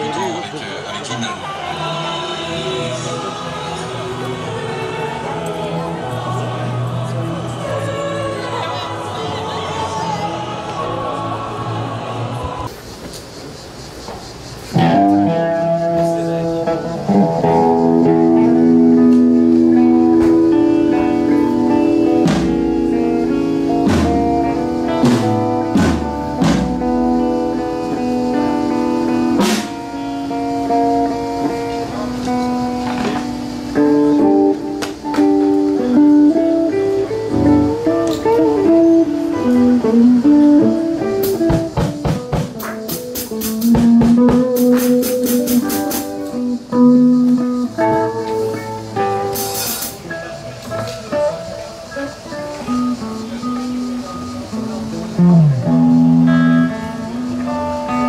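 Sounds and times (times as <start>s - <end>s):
guitar-led background music: 14.7s - 58.0s
drum hits: 25.0s - 27.0s, 41.4s - 46.1s.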